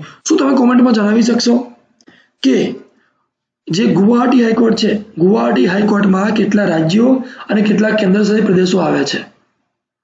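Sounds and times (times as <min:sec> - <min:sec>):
person narrating: 0:00.0 - 0:09.5.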